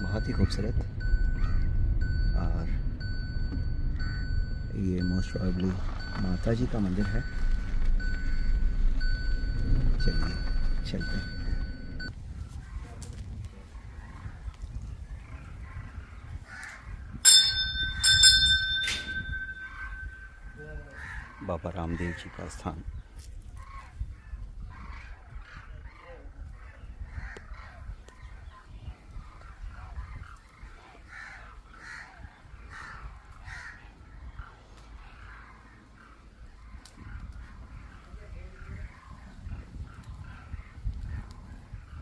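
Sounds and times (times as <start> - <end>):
low rumble: 0.0 - 12.3
metal temple bell ringing: 17.2 - 20.6
bird giving harsh calls: 18.9 - 22.1.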